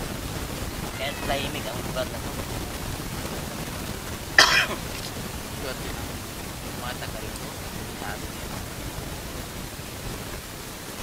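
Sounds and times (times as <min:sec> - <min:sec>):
background hiss: 0:00.0 - 0:11.0
man coughing: 0:04.4 - 0:04.9.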